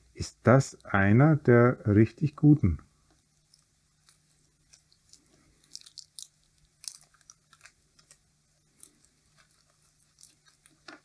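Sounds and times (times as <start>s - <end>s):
insulating tape peeling crackle: 3.2s - 11.0s.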